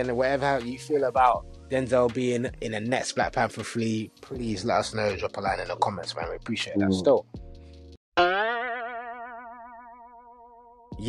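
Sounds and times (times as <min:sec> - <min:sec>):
cartoon boing: 0:08.2 - 0:10.9.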